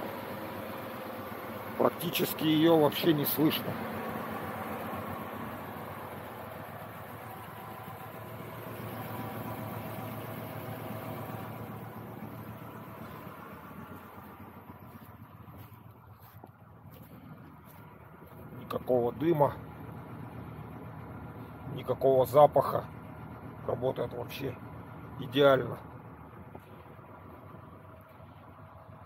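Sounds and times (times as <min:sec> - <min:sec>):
car engine idling: 0:00.0 - 0:29.0.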